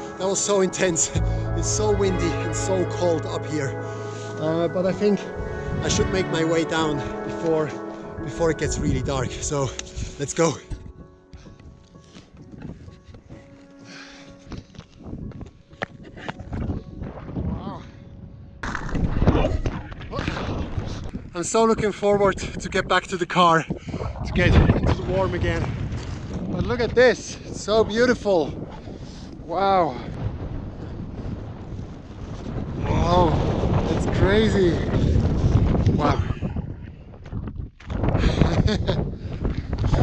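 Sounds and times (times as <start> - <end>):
soft background music: 0.0 - 18.9
wind buffeting microphone: 0.8 - 40.0.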